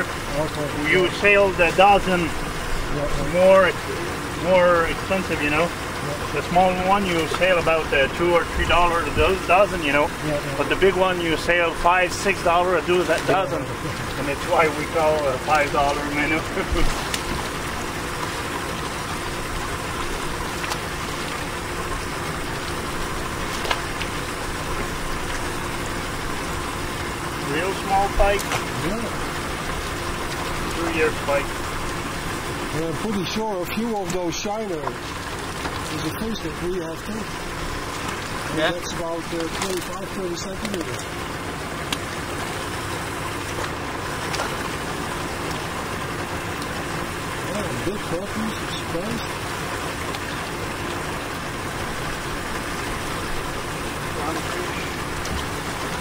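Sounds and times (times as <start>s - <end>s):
steady engine hum: 0.0s - 56.0s.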